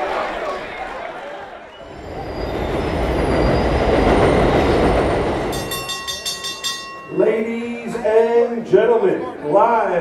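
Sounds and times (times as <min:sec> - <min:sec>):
train wheel squeal: 0:01.7 - 0:06.6
train rumbling overhead: 0:01.8 - 0:08.2.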